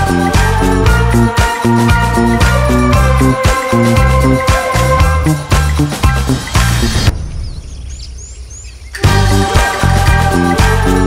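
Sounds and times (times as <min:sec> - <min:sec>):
music with bass beat: 0:00.0 - 0:07.2, 0:09.0 - 0:11.0
high bird chirps: 0:05.7 - 0:09.1.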